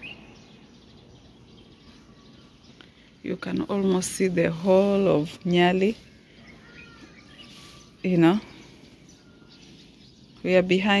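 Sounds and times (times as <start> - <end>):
faint outdoor background noise: 0.0 - 11.0
short bird chirps: 6.4 - 8.1.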